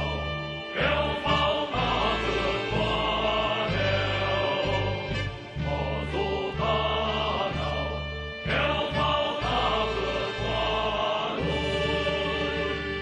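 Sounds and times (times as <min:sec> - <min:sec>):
choir singing: 0:00.0 - 0:13.0
instrumental accompaniment: 0:00.0 - 0:13.0
sustained bass notes: 0:00.0 - 0:13.0.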